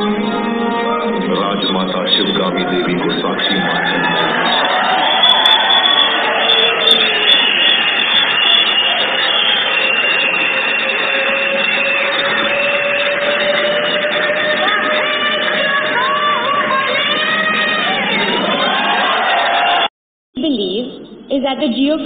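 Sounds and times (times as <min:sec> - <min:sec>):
dramatic music: 0:00.0 - 0:19.6.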